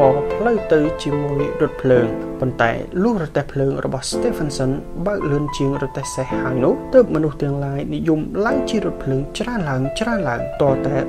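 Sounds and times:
background music: 0:00.0 - 0:11.0
narration voice speaking: 0:00.0 - 0:11.0.

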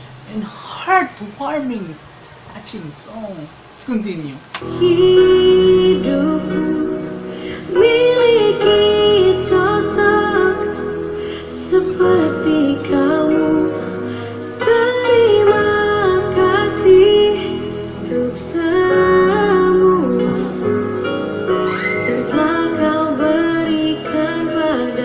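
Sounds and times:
soft instrumental accompaniment: 0:04.6 - 0:25.0
woman singing love song: 0:04.6 - 0:25.0.

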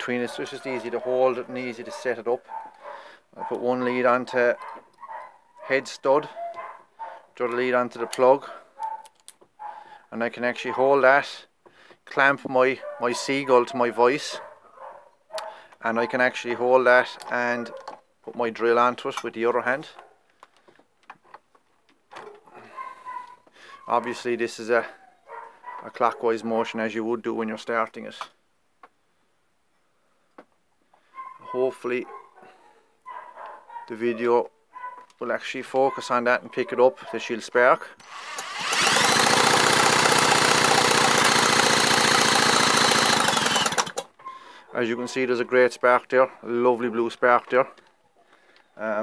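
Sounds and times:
power drill spinning: 0:38.0 - 0:44.1.

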